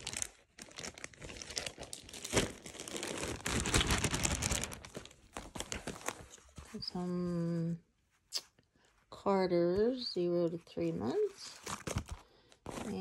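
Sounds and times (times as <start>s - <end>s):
plastic bag crinkling: 0.0s - 6.9s.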